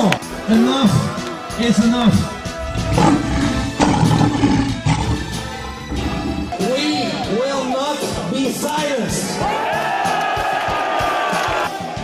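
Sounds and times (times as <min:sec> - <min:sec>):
background music: 0:00.0 - 0:12.0
lion roaring: 0:01.7 - 0:07.2.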